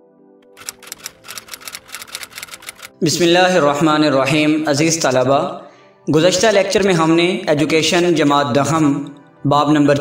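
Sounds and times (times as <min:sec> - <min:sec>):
typewriter key clicks: 0:00.4 - 0:02.9.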